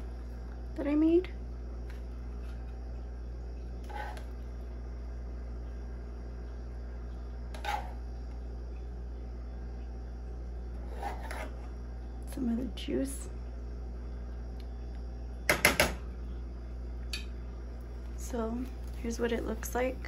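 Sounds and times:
steady low hum: 0:00.0 - 0:20.0
spatula scraping frying pan: 0:03.8 - 0:04.3, 0:07.6 - 0:08.0, 0:10.8 - 0:11.6.

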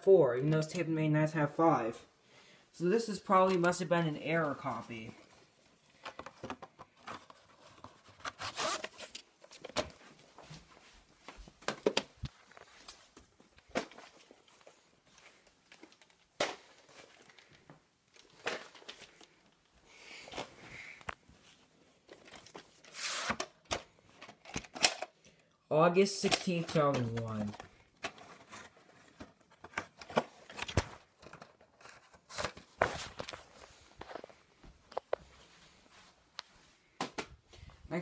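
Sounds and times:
tape cases clicking and knocking: 0:06.0 - 0:08.0, 0:23.4 - 0:25.2.

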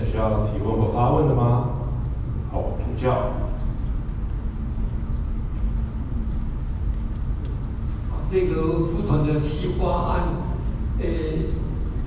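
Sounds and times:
faint steady hum: 0:00.0 - 0:12.0
low room rumble: 0:00.0 - 0:12.0
faint clicks: 0:03.5 - 0:08.1.

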